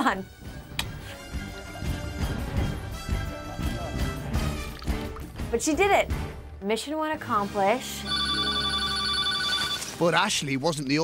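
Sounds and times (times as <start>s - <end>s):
telephone bell ringing: 8.0s - 10.0s.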